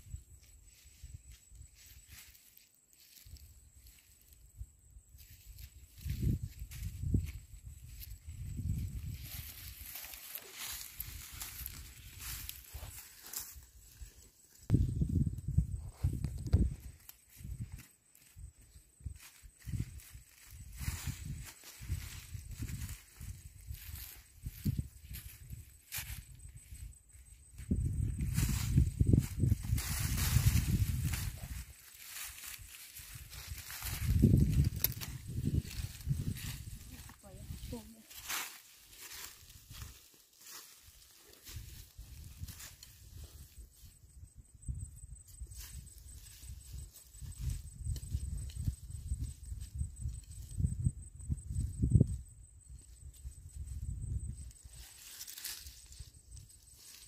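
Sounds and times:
hand tool digging in soil: 29.4s - 43.4s.

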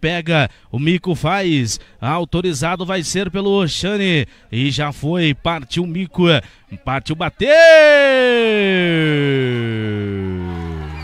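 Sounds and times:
man's long falling exclamation: 7.5s - 10.9s.

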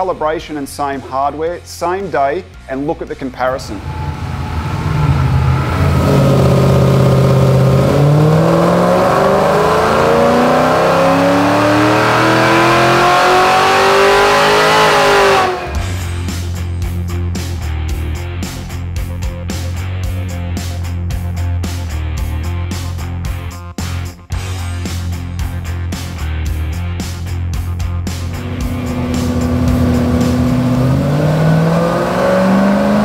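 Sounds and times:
rock guitar music: 3.4s - 33.0s
car engine revving on dynamometer: 3.5s - 16.1s, 28.1s - 33.0s.

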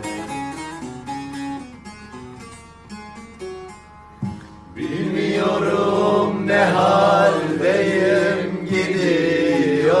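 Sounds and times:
plucked lute: 0.0s - 5.1s.

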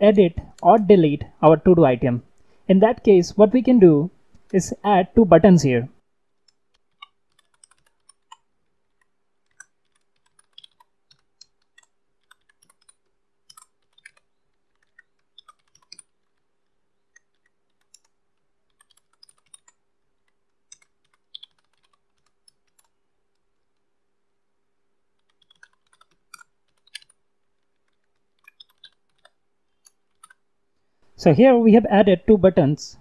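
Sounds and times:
faint keyboard keystrokes: 6.4s - 16.5s, 17.1s - 23.8s, 25.2s - 30.4s.

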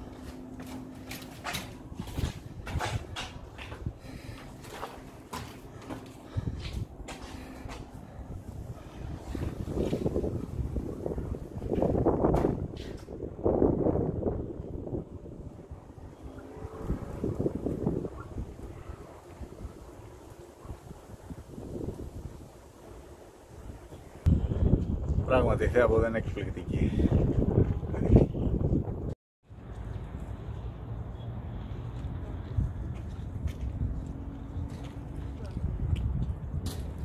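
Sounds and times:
wind buffeting microphone: 1.5s - 29.2s, 31.6s - 37.0s.

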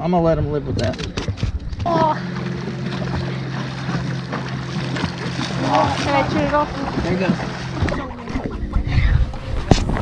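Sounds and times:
boat engine idling: 1.8s - 9.1s.

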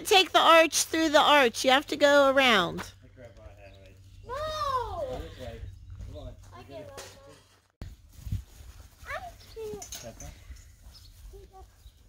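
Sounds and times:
children calling out: 4.3s - 5.2s
wind rumble on microphone: 7.8s - 8.8s.

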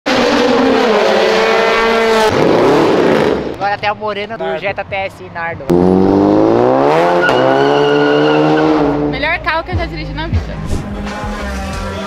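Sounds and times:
car engine at high revs: 0.0s - 3.6s, 5.7s - 9.2s.

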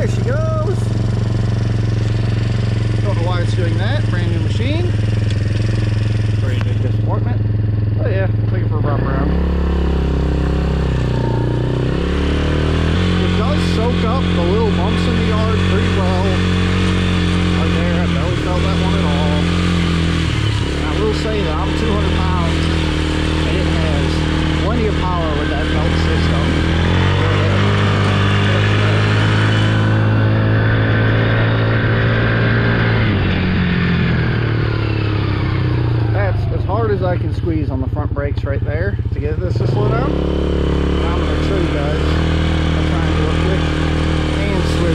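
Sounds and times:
small atv engine revving: 0.0s - 44.9s.

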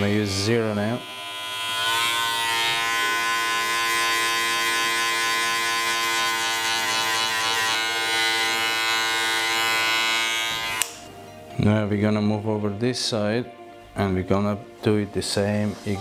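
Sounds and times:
hair clipper buzzing: 0.6s - 11.1s.

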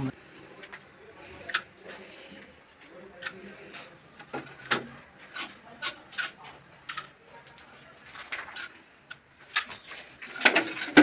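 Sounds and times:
plastic pipe scraping: 9.5s - 11.0s.

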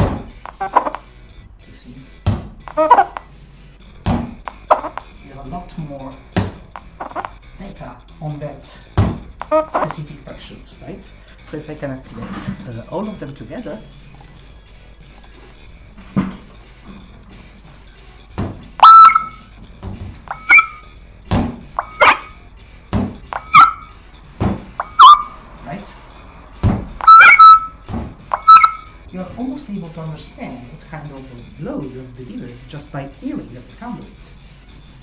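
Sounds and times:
dull thuds: 0.0s - 0.9s, 2.2s - 3.1s, 4.0s - 4.7s, 6.3s - 7.3s, 8.9s - 10.0s, 16.0s - 17.1s, 18.3s - 18.8s, 19.6s - 20.6s, 21.2s - 22.2s, 22.9s - 23.7s, 24.3s - 25.0s, 26.6s - 27.0s, 27.8s - 28.5s
synthetic beeps bending in pitch: 0.5s - 1.0s, 2.7s - 3.2s, 4.6s - 5.1s, 9.4s - 9.9s, 18.8s - 19.4s, 20.3s - 20.9s, 21.8s - 22.3s, 23.4s - 23.9s, 24.8s - 25.4s, 27.0s - 29.0s.

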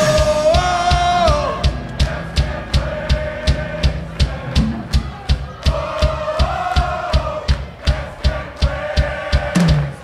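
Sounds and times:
live rock band playing: 0.0s - 5.6s
drum kit beat: 0.0s - 10.0s.

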